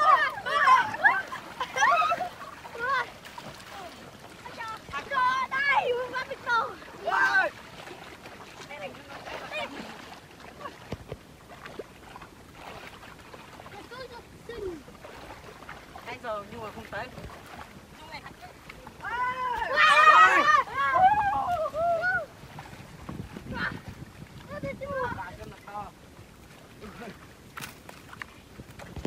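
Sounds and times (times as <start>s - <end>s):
boys shouting and laughing: 0.0s - 7.6s, 13.8s - 14.9s, 18.1s - 22.4s, 24.5s - 25.5s
water sloshing and splashing: 0.0s - 29.0s
wind rumble on microphone: 20.6s - 29.0s.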